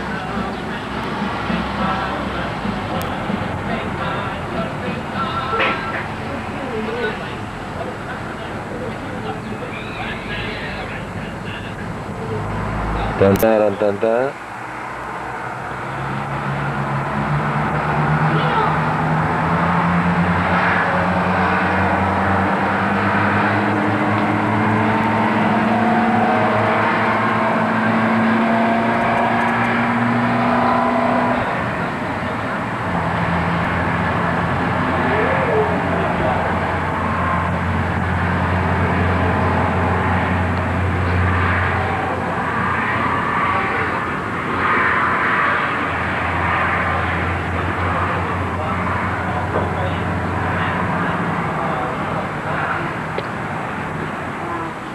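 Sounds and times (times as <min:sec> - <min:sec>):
vehicle engines running: 0:00.0 - 0:54.9
rising engine note: 0:15.3 - 0:44.0.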